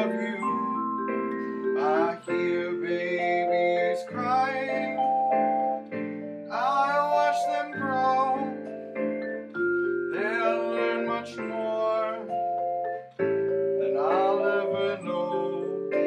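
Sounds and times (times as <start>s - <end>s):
person singing wordlessly: 0.0s - 0.9s, 1.8s - 5.2s, 6.5s - 8.7s, 10.1s - 12.6s, 13.8s - 16.0s
vibraphone chords and melody: 0.0s - 16.0s.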